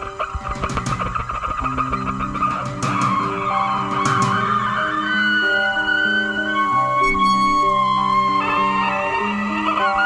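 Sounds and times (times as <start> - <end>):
drums: 0.0 - 4.8
keyboards: 0.0 - 10.0.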